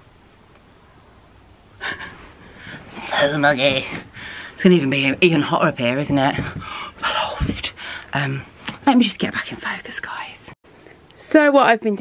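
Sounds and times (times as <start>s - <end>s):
light breathing: 1.8s - 3.0s, 3.9s - 4.6s, 6.4s - 8.2s.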